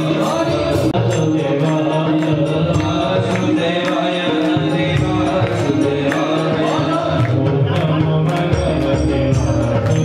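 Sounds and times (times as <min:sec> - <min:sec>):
chanted vocals: 0:00.0 - 0:10.0
steady drum beat: 0:00.0 - 0:10.0
sustained instrumental tones: 0:00.0 - 0:10.0.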